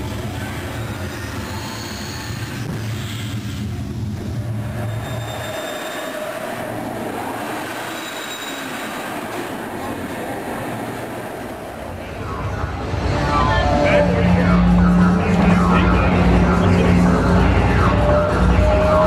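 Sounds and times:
ride mechanical rumble and hiss: 0.0 - 5.5, 6.1 - 19.0
high squeals of wheels on track: 0.3 - 3.7, 4.6 - 9.6.

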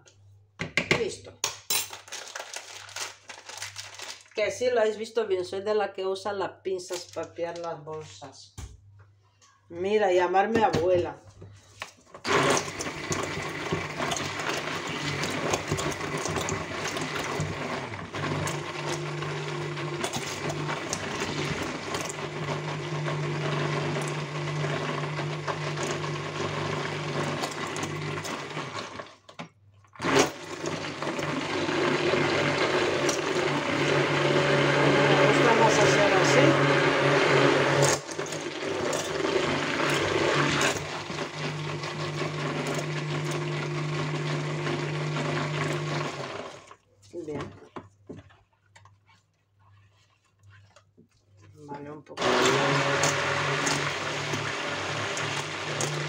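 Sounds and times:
stick blender churning batter: 12.2 - 29.4, 30.0 - 56.0.

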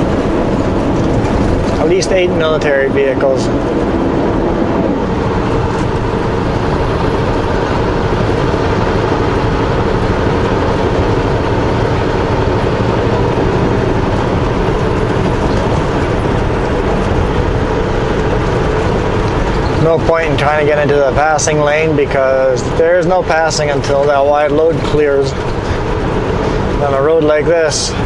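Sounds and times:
road noise: 0.0 - 28.0
truck diesel engine droning: 0.0 - 28.0.

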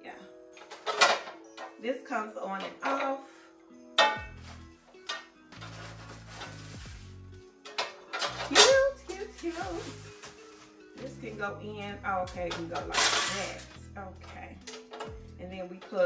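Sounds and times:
background music with bass line: 4.0 - 15.6
plastic bag crinkling: 5.6 - 7.3, 8.2 - 11.1.

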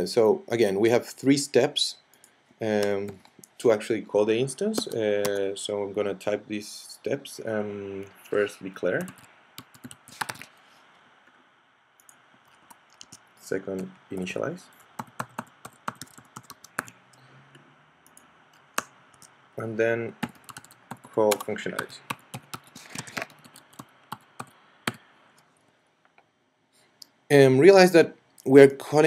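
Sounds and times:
computer keyboard typing: 9.0 - 10.5, 13.8 - 17.0, 20.2 - 25.0.

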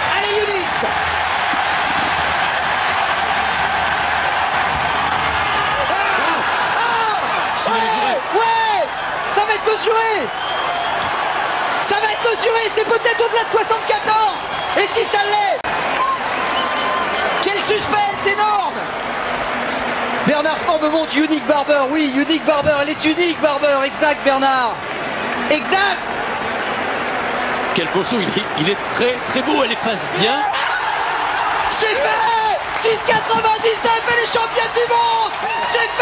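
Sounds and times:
stadium crowd cheering: 0.0 - 36.0
man commentating: 5.8 - 10.3, 31.7 - 36.0.

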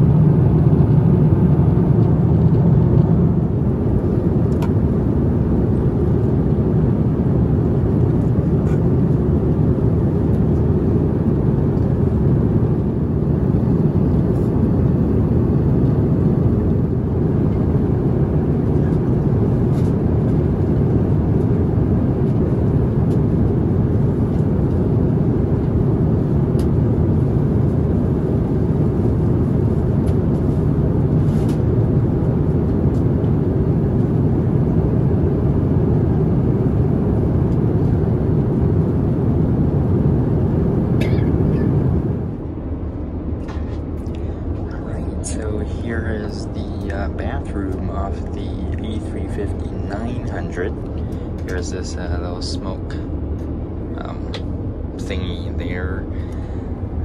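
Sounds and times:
airplane cabin engine rush: 0.0 - 57.0.

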